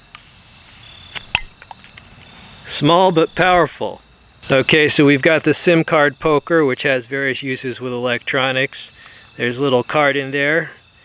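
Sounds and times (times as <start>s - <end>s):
bottle cap prised off: 0.1s - 2.0s
faint ticks: 8.9s - 9.3s.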